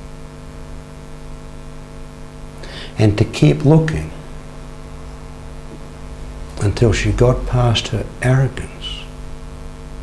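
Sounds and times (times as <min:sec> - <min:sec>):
faint hiss: 0:00.0 - 0:09.5
low electrical hum: 0:00.0 - 0:10.0.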